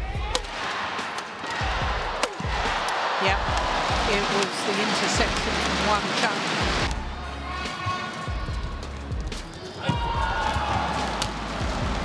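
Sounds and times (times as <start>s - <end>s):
arena crowd noise: 0.0s - 12.0s
racket striking shuttlecock: 2.2s - 3.0s.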